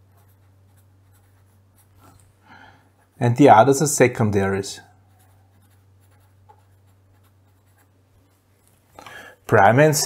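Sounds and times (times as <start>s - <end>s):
pen scratching on paper: 0.0s - 2.0s, 5.1s - 8.4s
steady low hum: 0.0s - 10.0s.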